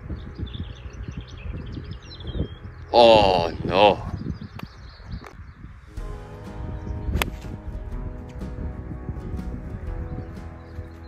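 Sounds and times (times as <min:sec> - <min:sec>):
background music: 0:05.8 - 0:11.0.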